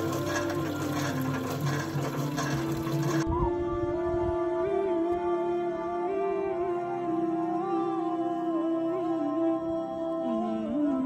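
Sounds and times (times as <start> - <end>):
water splashing into a pot: 0.0 - 3.2
music with sustained melodic tones: 0.0 - 11.0.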